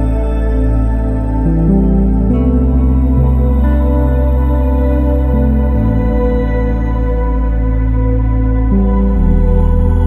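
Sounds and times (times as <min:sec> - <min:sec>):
ambient new-age music: 0:00.0 - 0:10.0.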